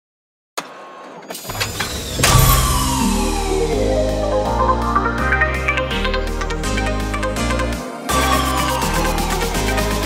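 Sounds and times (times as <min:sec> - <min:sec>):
electronic hit and clicks: 0:01.5 - 0:04.9
loud crash cymbal: 0:02.0 - 0:04.8
long falling sweep: 0:02.0 - 0:06.6
deep bass: 0:02.2 - 0:07.7
stepping bass line: 0:02.2 - 0:07.7.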